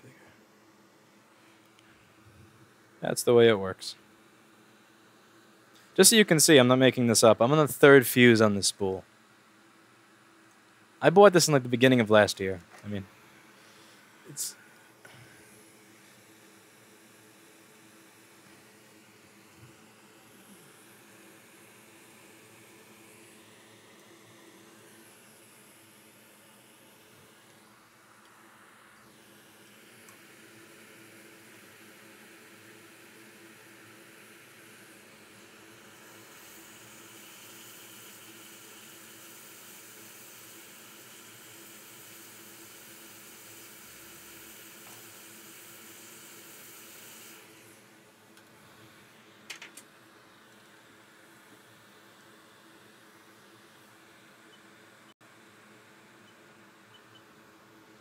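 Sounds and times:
hot air blower hissing: 11.2 - 51.2.

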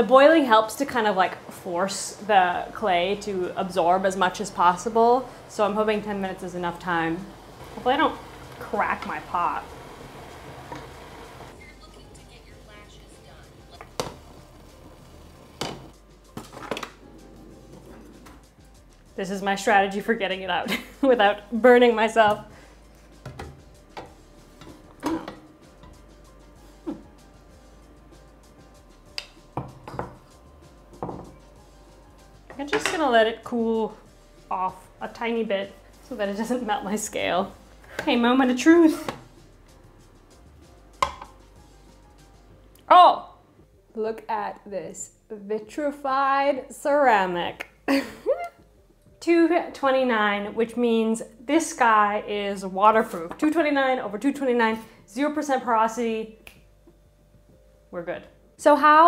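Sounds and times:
kitchen ware clattering: 23.3 - 25.5, 32.5 - 33.1.

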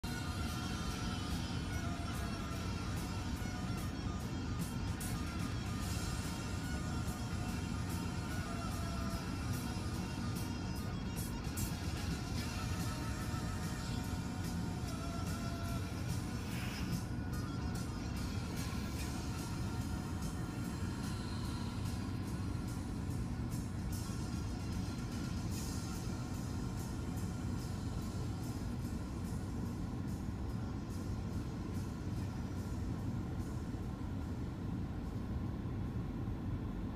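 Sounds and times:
music from car stereo: 0.0 - 36.9.

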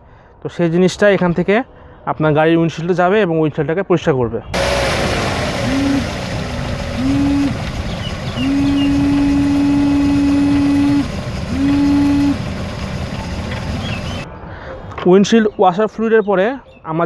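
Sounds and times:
low rumble: 4.6 - 14.3
washer pump whining: 4.6 - 14.3.

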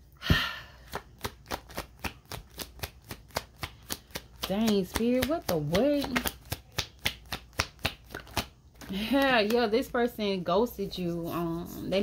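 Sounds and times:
cards shuffling: 0.9 - 9.8.

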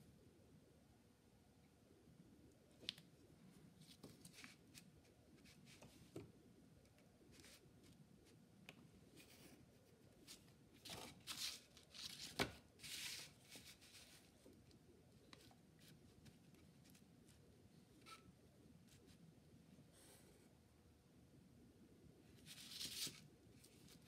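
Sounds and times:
paper rustling: 3.8 - 6.2, 9.2 - 14.5, 22.4 - 24.0.

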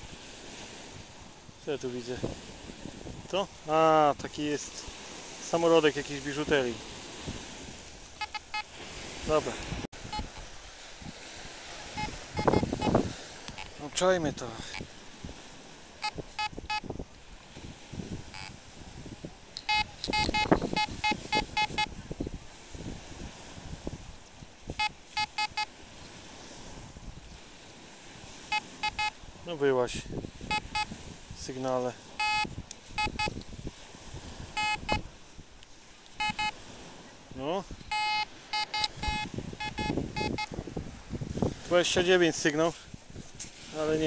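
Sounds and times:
metal detector beeping: 8.1 - 8.7, 10.0 - 10.5, 11.9 - 13.7, 16.0 - 16.9, 18.3 - 18.5, 19.6 - 21.9, 24.7 - 25.7, 28.5 - 29.2, 30.5 - 30.9, 32.2 - 33.4, 34.6 - 35.0, 36.1 - 36.6, 37.9 - 40.5.

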